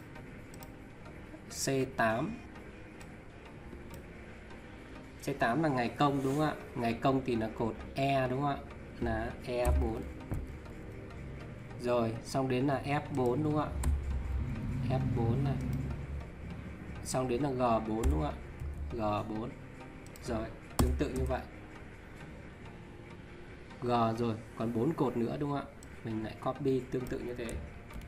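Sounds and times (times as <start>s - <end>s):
man talking: 11.8s - 13.8s, 23.8s - 27.6s.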